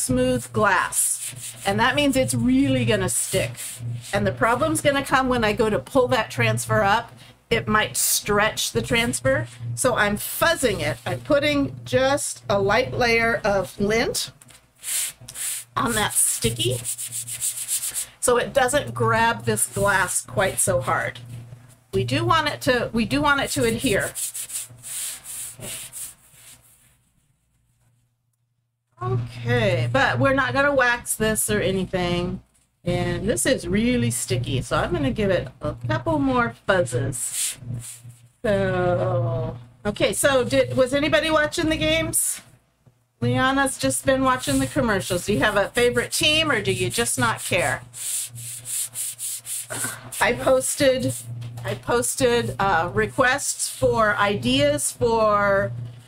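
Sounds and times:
palms brushing over vinyl: 0.6s - 5.2s, 10.3s - 11.5s, 14.5s - 21.8s, 23.4s - 28.0s, 37.2s - 38.3s, 44.2s - 54.6s.

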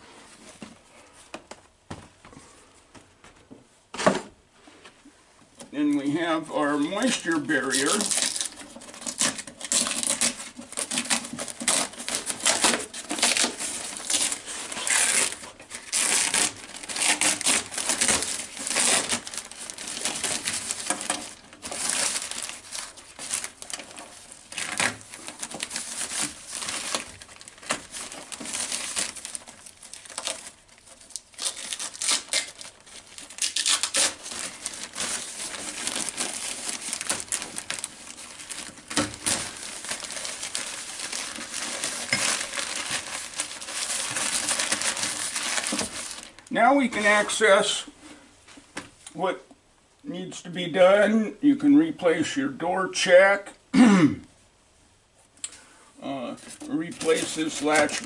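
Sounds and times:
plastic sheet crackling and rustling: 6.0s - 47.8s, 56.3s - 58.0s.

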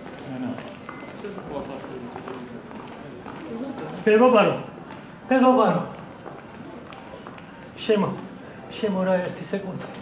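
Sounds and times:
footsteps in corridor: 0.0s - 8.4s.

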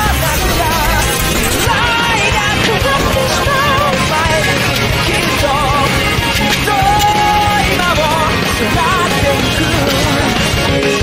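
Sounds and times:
loud mashup music: 0.0s - 11.0s.

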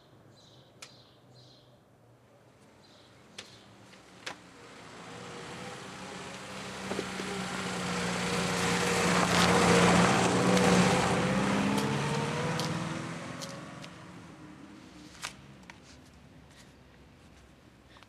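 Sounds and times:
engine passing by: 4.1s - 15.7s.

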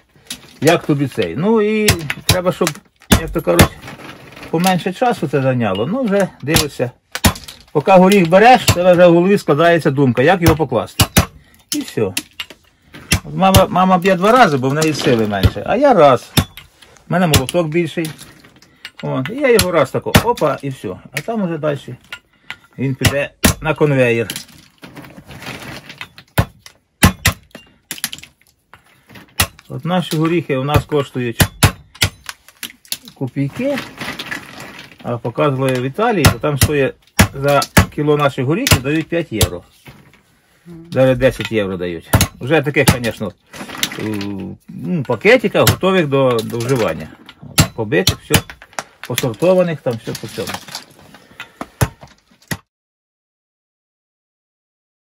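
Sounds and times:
hammer cracking walnuts: 0.2s - 4.7s, 6.1s - 9.5s, 10.1s - 21.4s, 22.0s - 24.6s, 26.0s - 39.6s, 41.2s - 52.7s
walnuts clattering in a bag: 24.1s - 26.3s, 32.2s - 35.9s, 43.2s - 45.2s, 48.5s - 52.5s.

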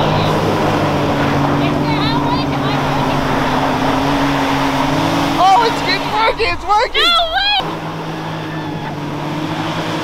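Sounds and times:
engines running hard: 0.0s - 10.0s
excited shouts: 5.4s - 9.1s.

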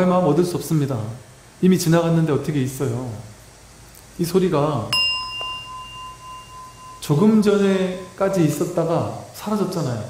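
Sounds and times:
small metal bell ringing: 4.9s - 8.7s.

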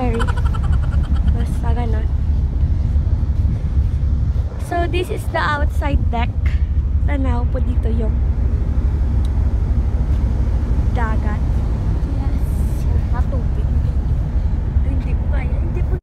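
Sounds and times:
ship engines running: 0.0s - 16.0s
wind on microphone: 0.0s - 16.0s.

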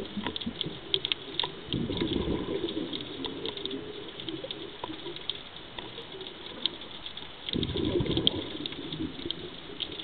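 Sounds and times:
underwater crackle of clicks: 0.0s - 10.0s.

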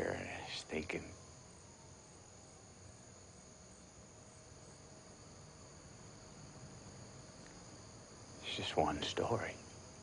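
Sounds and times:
night insects chirring: 0.0s - 10.0s.

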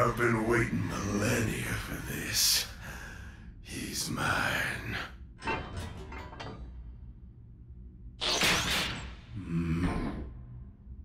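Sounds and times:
low steady rumble: 0.0s - 8.2s.

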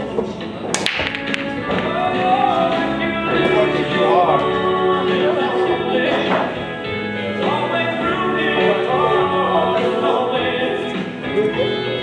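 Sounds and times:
pool balls clacking: 0.0s - 6.7s
background music with singing: 0.0s - 12.0s
cue striking cue ball: 0.7s - 3.6s.

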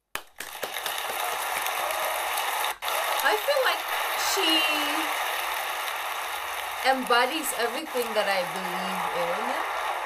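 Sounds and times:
audience applauding: 0.1s - 10.0s.

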